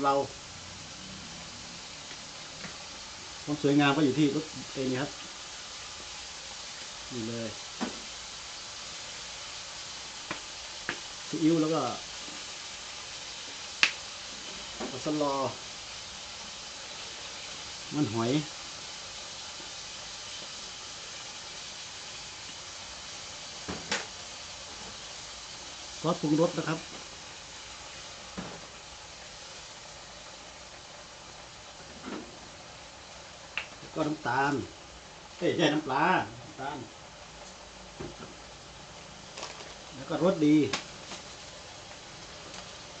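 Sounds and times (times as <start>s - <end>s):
meat sizzling in a wok: 0.0s - 43.0s.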